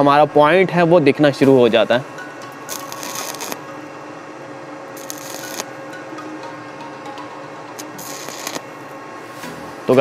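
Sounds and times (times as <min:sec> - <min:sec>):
welding arc crackling: 0:02.6 - 0:03.7, 0:05.0 - 0:05.8, 0:07.8 - 0:08.8.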